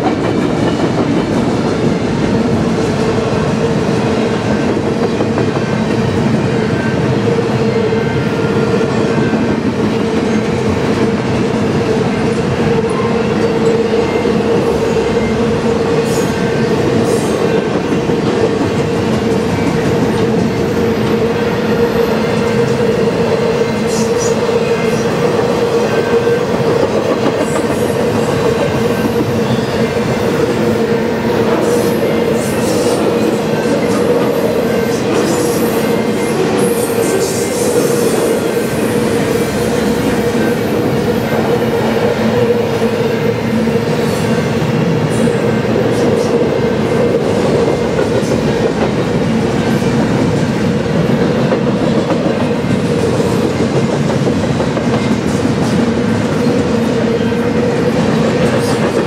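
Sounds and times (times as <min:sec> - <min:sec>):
freight train wheels rumbling on rail: 0:00.0 - 0:59.0.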